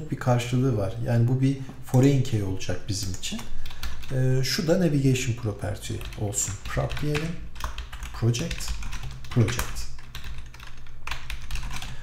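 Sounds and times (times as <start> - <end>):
low steady hum: 0.0 - 12.0
keyboard typing: 2.9 - 4.2, 5.8 - 12.0.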